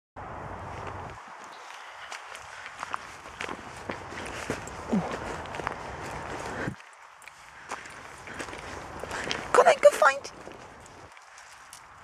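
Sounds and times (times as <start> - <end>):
dry vegetation crackling and rustling: 0.3 - 12.0
footsteps through long grass: 0.5 - 9.6, 10.3 - 12.0.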